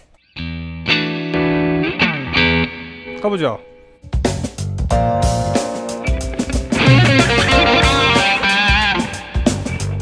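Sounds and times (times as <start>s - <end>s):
electric guitar lead line: 0.4s - 3.2s, 4.9s - 10.0s.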